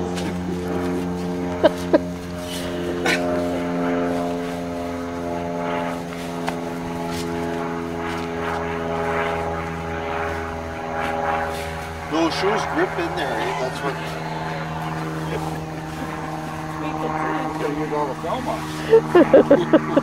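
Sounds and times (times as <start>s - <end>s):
steady mechanical hum: 0.0s - 20.0s.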